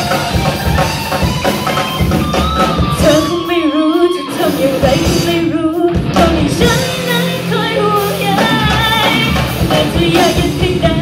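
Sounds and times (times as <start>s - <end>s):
bass guitar: 0.0s - 11.0s
drum kit: 0.0s - 11.0s
electric guitar: 0.0s - 11.0s
woman singing: 2.3s - 11.0s.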